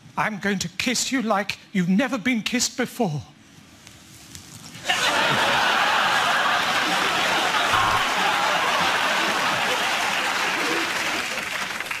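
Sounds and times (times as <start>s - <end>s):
audience laughing: 4.8s - 12.0s
audience applauding: 4.9s - 12.0s.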